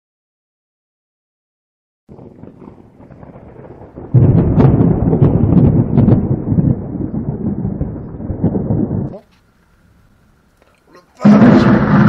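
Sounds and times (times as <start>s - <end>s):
thunder clap: 2.1s - 9.2s, 11.2s - 12.0s
thunder rumbling and cracking: 2.1s - 9.2s, 11.2s - 12.0s.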